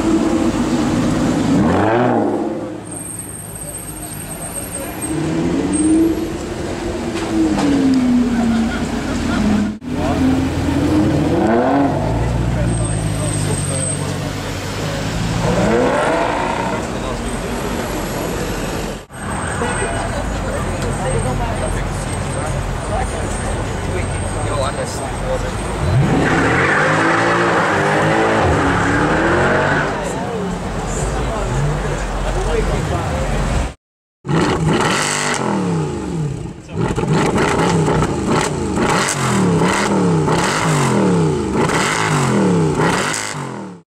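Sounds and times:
car engine revving: 0:04.9 - 0:17.3, 0:25.4 - 0:30.9, 0:34.2 - 0:43.8.

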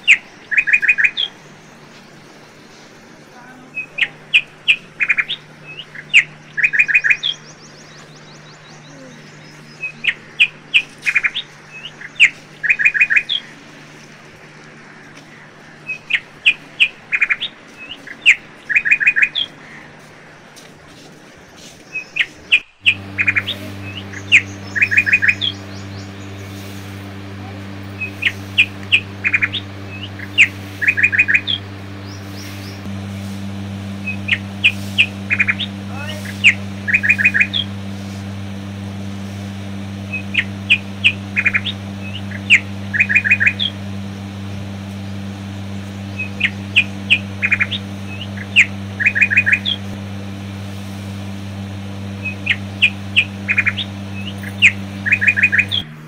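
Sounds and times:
small birds chirping: 0:00.0 - 0:55.9
steady low hum: 0:00.0 - 0:56.0.

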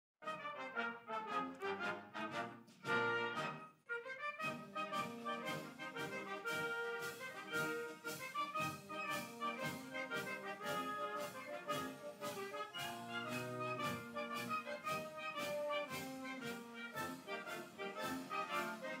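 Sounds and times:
brass band playing: 0:00.2 - 0:19.0.

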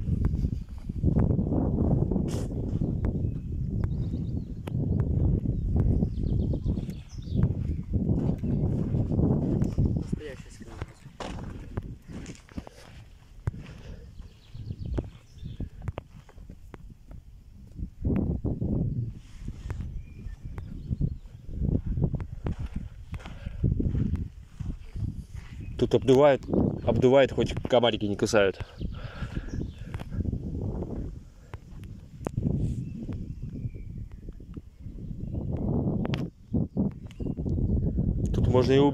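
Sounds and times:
footsteps on sandy path: 0:00.0 - 0:34.6
wind rumble on microphone: 0:00.0 - 0:38.9.

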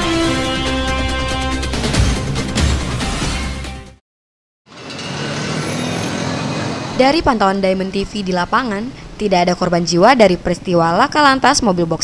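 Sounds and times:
street traffic noise: 0:04.7 - 0:12.0.

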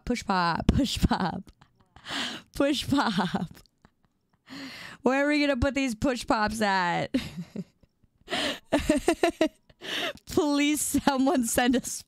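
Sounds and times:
woman breathing: 0:02.0 - 0:02.6, 0:04.4 - 0:05.1, 0:08.2 - 0:08.7, 0:09.7 - 0:10.2
woman's breathy laughter: 0:07.1 - 0:10.2.

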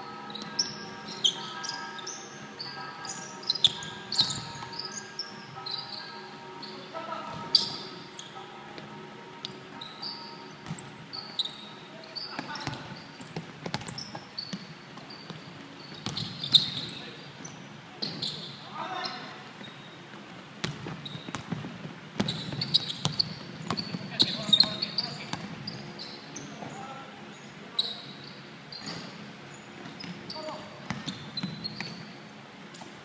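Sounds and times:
sneakers squeaking: 0:00.0 - 0:32.2
basketball bouncing on wooden floor: 0:12.4 - 0:14.7.

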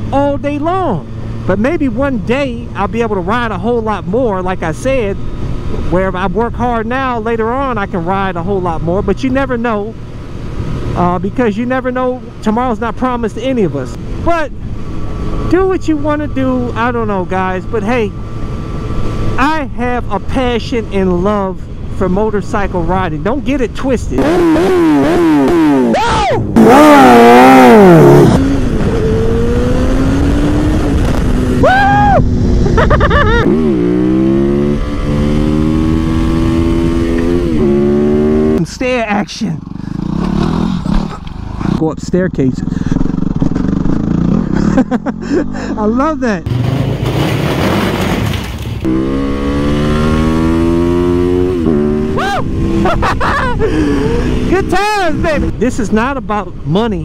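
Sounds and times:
motorcycle accelerating: 0:00.0 - 0:57.0
motorcycle shifting gears: 0:24.2 - 0:31.6, 0:32.6 - 0:38.6, 0:39.6 - 0:41.8.

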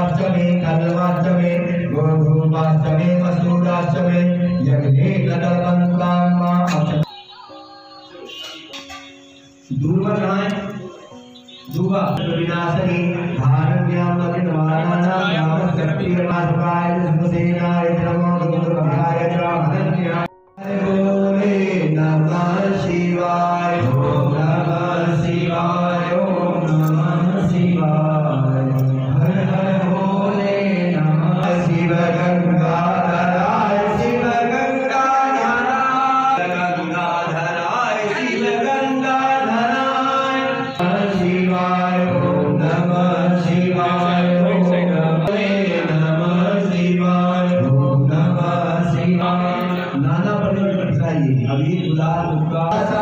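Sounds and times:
man chanting: 0:00.0 - 0:07.3, 0:09.7 - 0:53.0.

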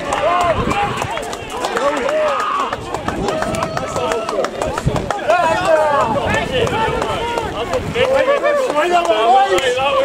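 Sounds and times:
men shouting and cheering: 0:00.0 - 0:10.0.

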